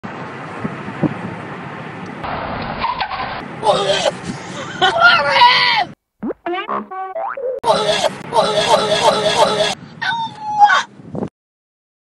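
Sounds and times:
car road and engine noise: 0.0s - 6.1s, 7.6s - 11.3s.

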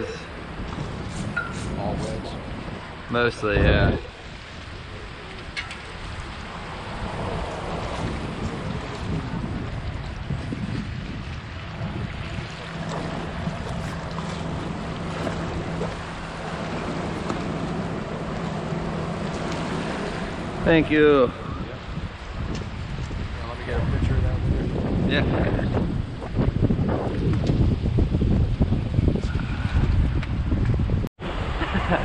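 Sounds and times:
wind on microphone: 0.0s - 32.0s
steady low hum: 11.3s - 22.4s.

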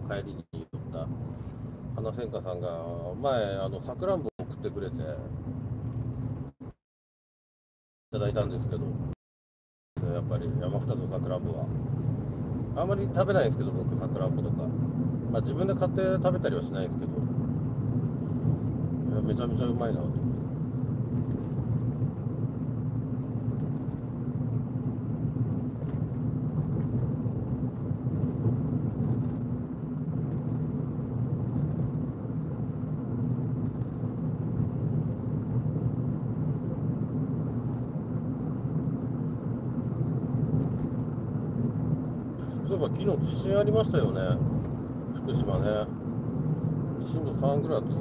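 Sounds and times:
car engine and road noise: 0.0s - 6.8s, 8.2s - 9.2s, 10.0s - 48.0s.

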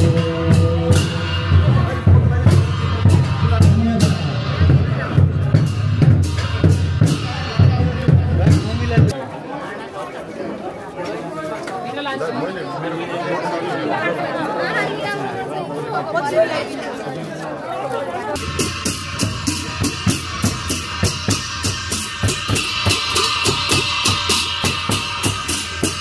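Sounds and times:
cymbals clashing: 0.0s - 9.1s, 18.4s - 26.0s
barrel drums beating: 0.0s - 9.2s, 18.4s - 26.0s
crowd chatter: 0.0s - 26.0s.

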